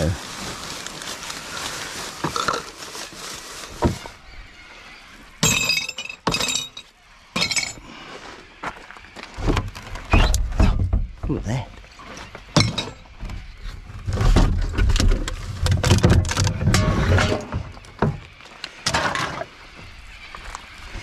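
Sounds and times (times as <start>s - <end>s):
rubbish rustling: 0.0s - 4.5s, 12.0s - 19.5s
glass bottles and cans clinking: 5.4s - 7.8s, 12.6s - 13.0s.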